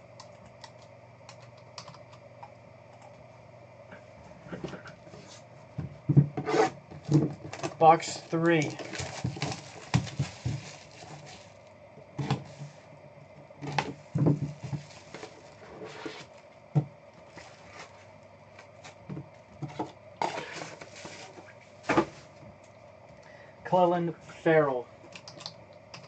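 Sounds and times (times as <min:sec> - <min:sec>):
shrink wrap crinkling: 0:07.5 - 0:11.8, 0:14.5 - 0:15.6.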